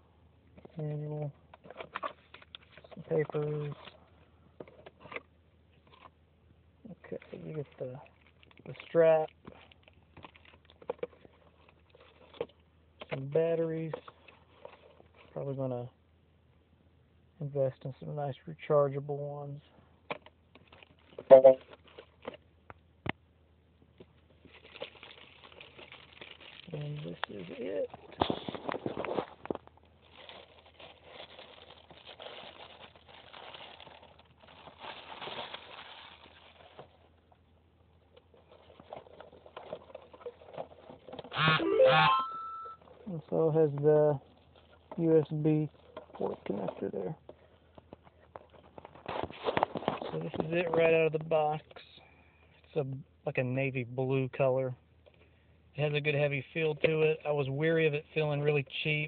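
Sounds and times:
hands handling cardboard packaging: 1.5s - 4.0s, 7.0s - 15.4s, 20.1s - 22.8s, 24.0s - 37.4s, 38.0s - 41.4s, 45.7s - 51.0s
plastic bag crinkling: 20.6s - 22.4s, 24.4s - 37.2s, 38.2s - 41.3s.

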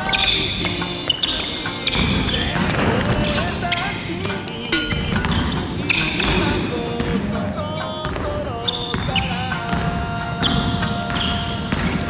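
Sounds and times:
background music with melody: 0.0s - 12.0s.

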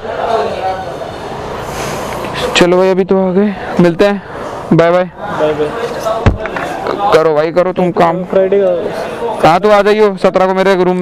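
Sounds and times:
sharp thump: 6.2s - 6.6s.

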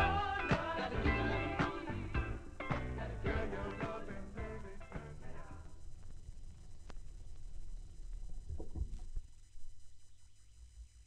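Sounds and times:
record surface noise: 0.0s - 11.0s.

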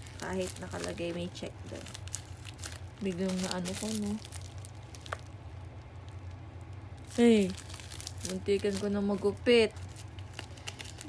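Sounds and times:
scissors on plastic bag: 0.0s - 5.2s, 7.1s - 11.0s
steady low hum: 0.0s - 11.0s.

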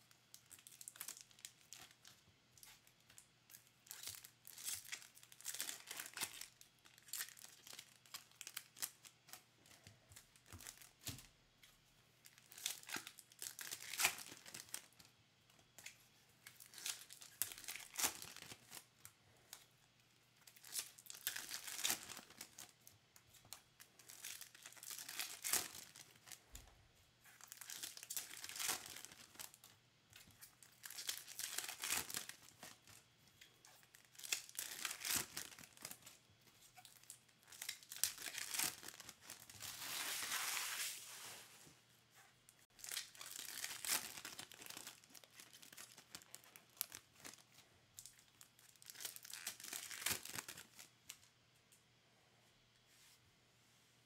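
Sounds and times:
foil wrappers tearing and crinkling: 3.6s - 9.2s, 12.3s - 15.0s, 16.5s - 18.9s, 20.5s - 22.7s, 24.0s - 26.4s, 27.4s - 29.7s, 30.6s - 33.0s, 33.8s - 36.1s, 36.8s - 41.0s, 42.8s - 47.4s, 48.0s - 50.9s.

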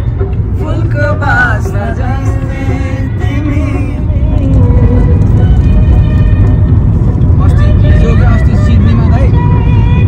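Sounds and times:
car road and wind rumble: 0.0s - 10.0s.

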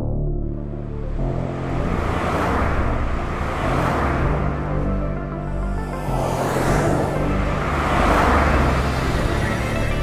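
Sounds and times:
background music with low notes: 0.0s - 10.0s
car driving past: 1.6s - 10.0s.

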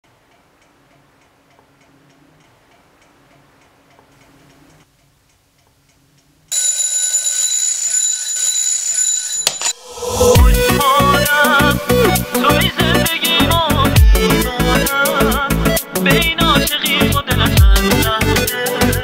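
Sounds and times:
alarm clock bells ringing: 6.5s - 10.4s
alarm clock ticking: 6.5s - 14.9s.

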